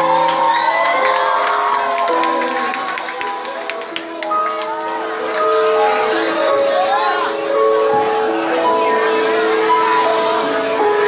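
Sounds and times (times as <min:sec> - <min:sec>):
crowd cheering and whooping: 0:00.0 - 0:07.4.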